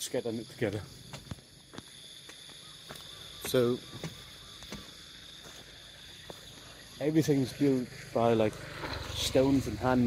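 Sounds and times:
insects droning: 0.0s - 10.0s
footsteps on a path: 1.0s - 8.6s.

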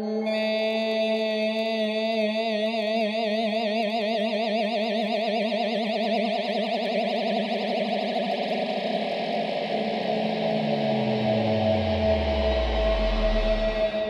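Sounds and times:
low bass note sliding down: 10.6s - 14.0s.

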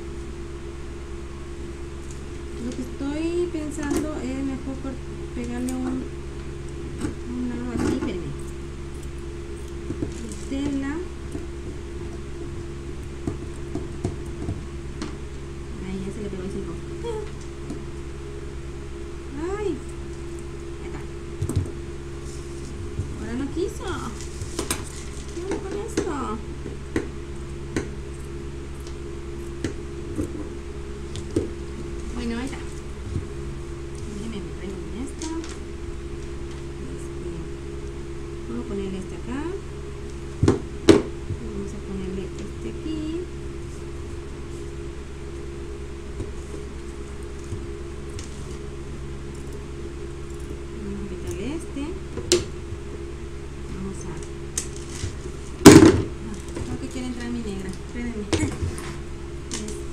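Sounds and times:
electric fan humming: 0.0s - 59.9s.

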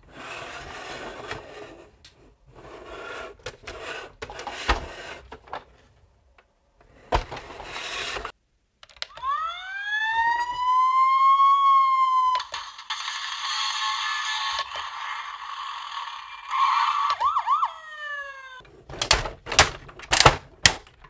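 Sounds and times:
toy electronic siren: 9.1s - 18.6s.

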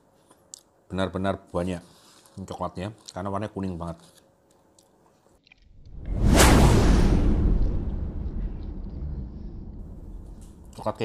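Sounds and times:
whoosh with deep boom: 5.8s - 10.8s.

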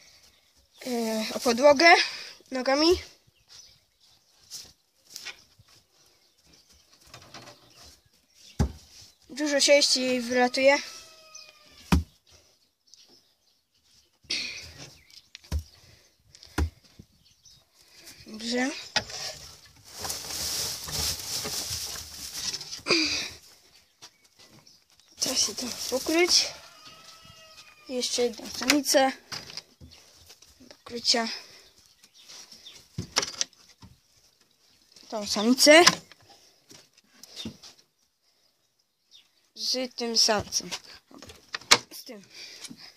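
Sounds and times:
person speaking: 0.8s - 3.1s, 9.3s - 11.2s, 18.2s - 19.2s, 25.2s - 26.8s, 27.9s - 29.2s, 30.7s - 31.5s, 39.6s - 40.9s
hay rustling: 19.1s - 23.1s, 25.2s - 26.4s.

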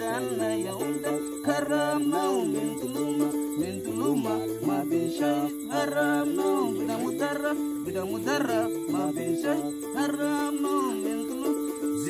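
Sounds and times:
held accompanying notes: 0.0s - 12.0s
man singing: 0.0s - 12.0s.

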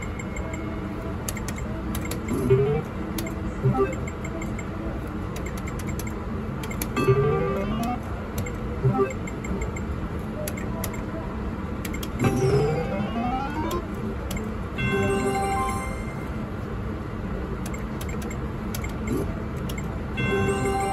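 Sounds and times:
rising electronic tones: 12.2s - 13.9s.

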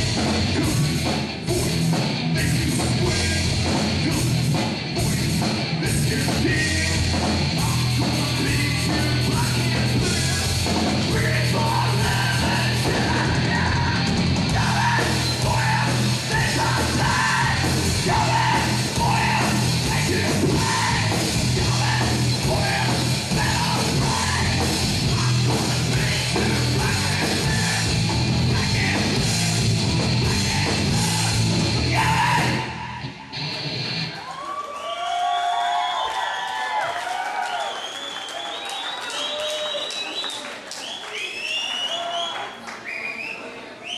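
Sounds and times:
distorted guitar: 0.0s - 34.2s
heavy metal band playing: 0.0s - 34.2s
bass: 0.0s - 35.1s
drums: 0.0s - 37.6s
audience cheering and whooping: 31.9s - 43.6s
people clapping: 34.0s - 43.7s.

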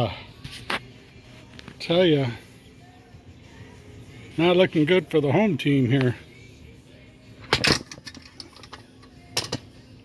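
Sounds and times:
toy truck metal rattle: 7.5s - 9.6s.

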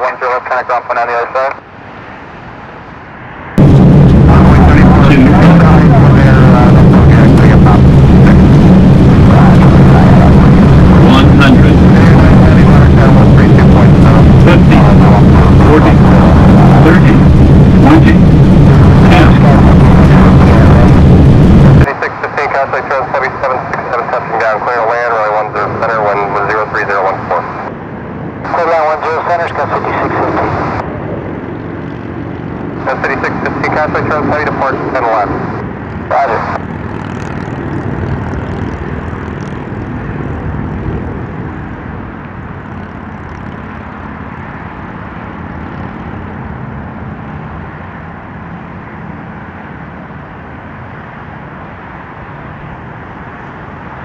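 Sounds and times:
air traffic control radio voices: 0.0s - 1.7s, 4.3s - 21.1s, 21.8s - 27.7s, 28.4s - 31.0s, 32.8s - 36.6s
jet engine roar: 0.0s - 54.0s.

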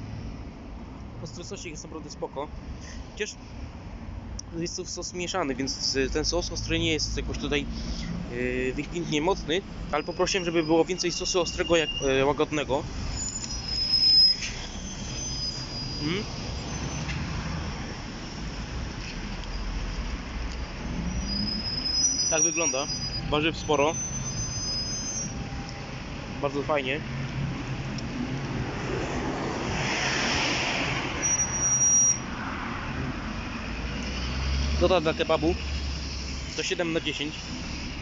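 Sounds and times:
street traffic rumble: 0.0s - 38.0s
brief high-pitched squeal: 10.0s - 12.3s, 13.0s - 17.3s, 20.6s - 25.8s, 31.2s - 32.3s
high-pitched whine: 13.2s - 17.1s
car passing: 25.3s - 31.6s, 32.2s - 38.0s.

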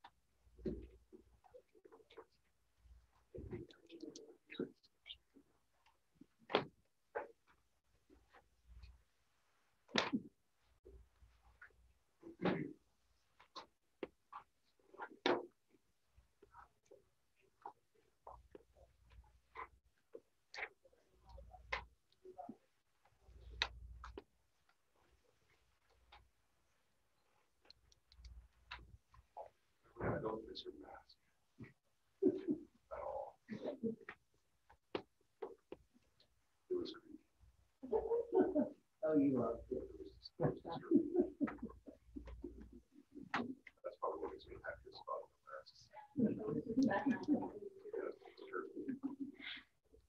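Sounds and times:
man talking: 30.0s - 31.2s, 39.0s - 41.2s, 43.8s - 46.6s, 47.9s - 49.2s
faint murmuring voices: 37.8s - 49.8s.

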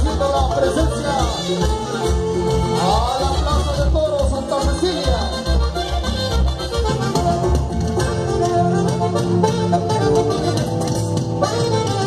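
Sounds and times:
live band over loudspeakers: 0.0s - 12.0s.

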